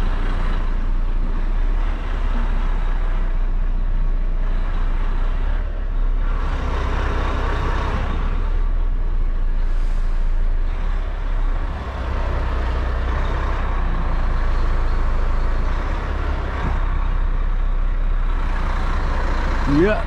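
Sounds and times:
diesel lorry engine from cab: 0:00.0 - 0:20.0.

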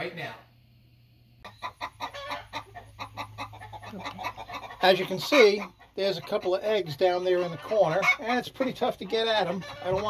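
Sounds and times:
chickens clucking: 0:01.4 - 0:10.0.

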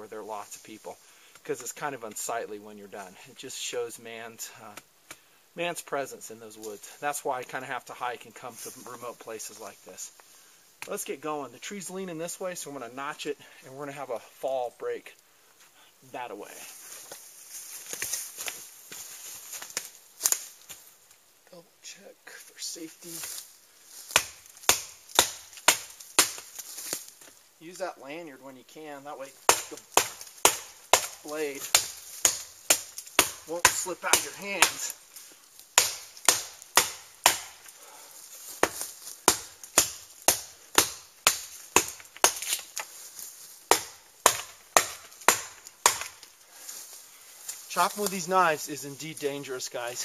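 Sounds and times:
knife blade chopping wood: 0:24.1 - 0:26.5, 0:29.4 - 0:35.0, 0:35.8 - 0:37.6, 0:38.6 - 0:42.9, 0:43.7 - 0:46.2.

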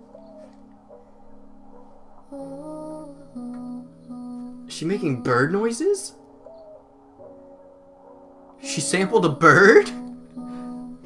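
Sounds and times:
soft music: 0:00.0 - 0:11.0
dove cooing: 0:06.4 - 0:08.5.

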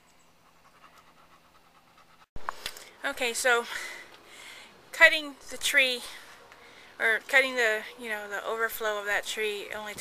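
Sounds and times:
dog panting: 0:00.3 - 0:02.3.

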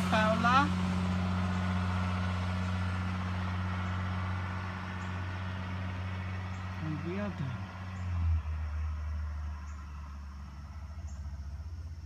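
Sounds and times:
bus engine driving away: 0:00.0 - 0:12.0.

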